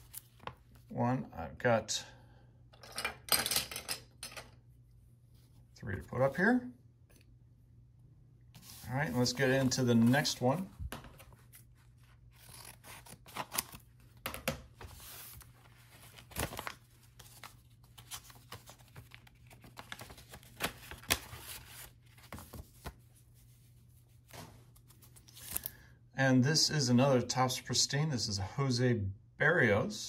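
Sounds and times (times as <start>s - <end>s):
paper rustling and crinkling: 0.0s - 0.9s, 8.6s - 25.7s.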